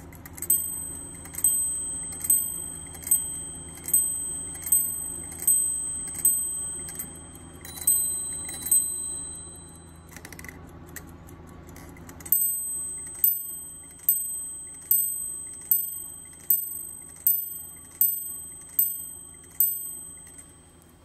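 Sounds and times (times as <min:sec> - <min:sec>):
clock striking bell: 0:00.4 - 0:10.2, 0:12.3 - 0:20.8
second clock bell: 0:00.5 - 0:10.2.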